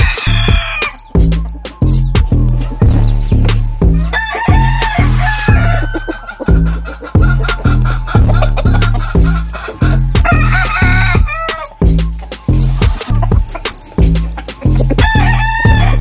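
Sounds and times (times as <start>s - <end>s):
rooster crowing: 0.0s - 1.0s, 4.0s - 11.8s, 15.0s - 16.0s
music with heavy bass beat: 0.0s - 16.0s.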